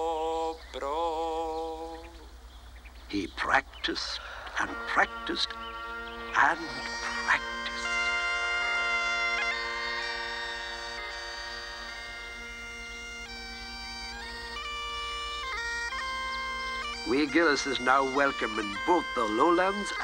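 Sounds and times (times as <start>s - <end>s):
bagpipes playing slow tune: 3.4s - 20.0s.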